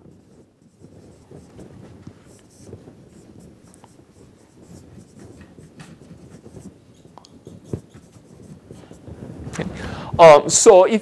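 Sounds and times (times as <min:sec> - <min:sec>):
marker squeaking on whiteboard: 0:00.0 - 0:09.2.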